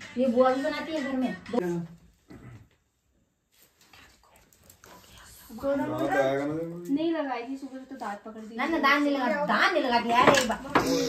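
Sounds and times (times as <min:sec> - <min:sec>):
faint small noises: 0:01.6 - 0:11.0.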